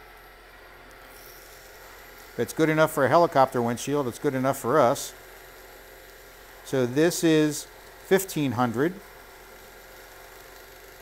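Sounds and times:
wood lathe motor humming: 0:00.0 - 0:11.0.

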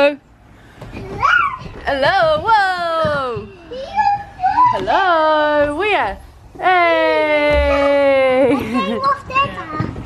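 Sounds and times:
child's excited shouting: 0:01.1 - 0:01.8, 0:03.7 - 0:04.9.

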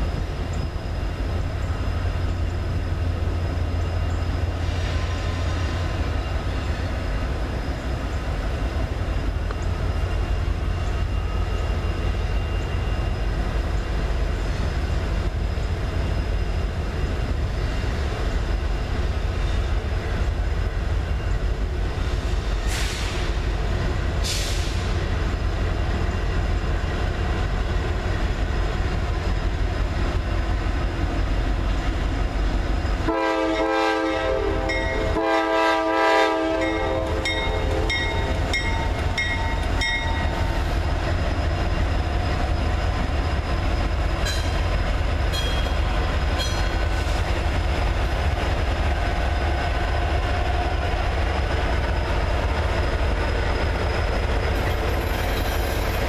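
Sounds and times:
freight train rumbling past: 0:00.0 - 0:56.0
locomotive air horn: 0:33.1 - 0:38.1.

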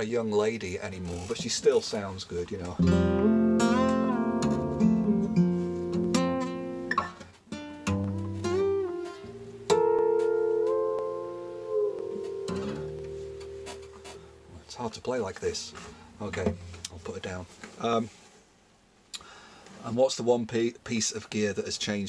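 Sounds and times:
acoustic guitar tapping: 0:02.7 - 0:14.7, 0:15.7 - 0:16.9.

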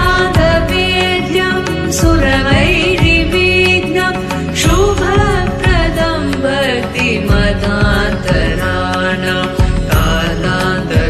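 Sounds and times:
instrumental backing with beat: 0:00.0 - 0:11.0
person singing devotional song: 0:00.0 - 0:11.0.

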